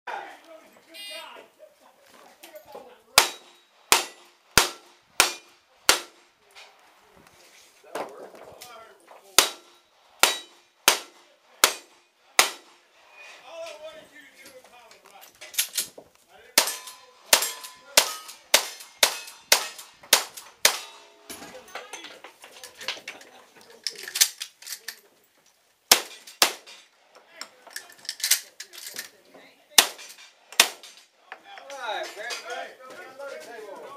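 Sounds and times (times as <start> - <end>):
rifle shots: 3.2 - 6.2, 9.4 - 12.8, 16.6 - 21.0, 25.9 - 26.7, 29.8 - 30.9.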